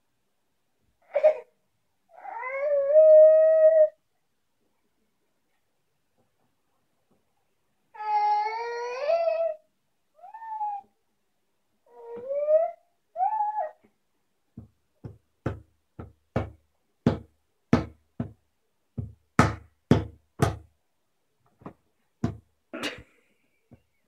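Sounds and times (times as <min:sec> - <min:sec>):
baby squealing and calling: 0:02.1 - 0:04.0, 0:10.2 - 0:10.9, 0:11.9 - 0:13.8.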